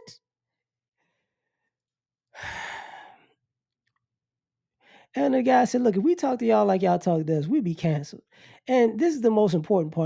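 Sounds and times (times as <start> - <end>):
man sighing: 2.4 - 3.2.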